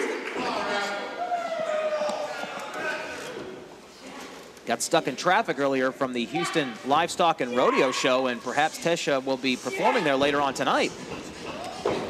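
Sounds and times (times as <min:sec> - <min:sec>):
voices calling out in echoing hall: 0:00.0 - 0:04.6, 0:05.6 - 0:12.0.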